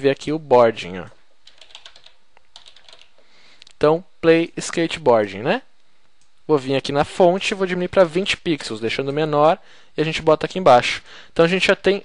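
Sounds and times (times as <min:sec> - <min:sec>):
faint keyboard typing: 0:01.4 - 0:03.8.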